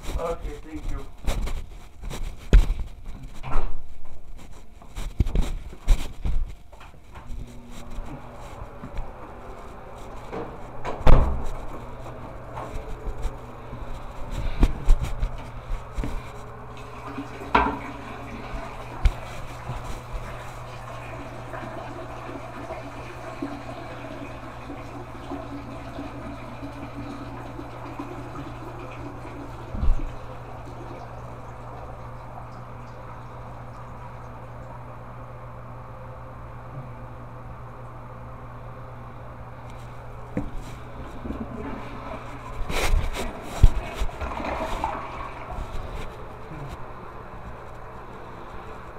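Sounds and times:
steady low hum: 0:00.0 - 0:48.9
water running into tank: 0:07.3 - 0:35.3, 0:39.8 - 0:46.8
toilet flushing: 0:07.9 - 0:34.9, 0:40.4 - 0:46.7.

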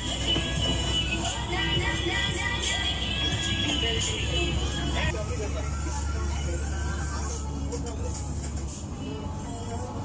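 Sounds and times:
boat engine rumble: 0:00.0 - 0:10.0
people talking: 0:03.8 - 0:08.4.

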